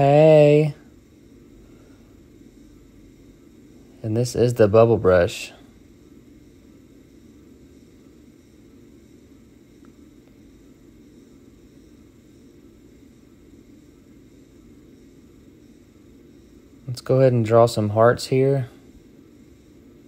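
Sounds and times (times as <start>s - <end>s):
faint room hiss and hum: 0.0s - 20.0s.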